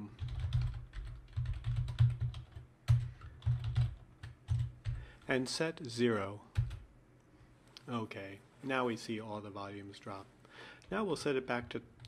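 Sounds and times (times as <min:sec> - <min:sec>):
computer keyboard typing: 0:00.1 - 0:05.0, 0:06.5 - 0:06.8.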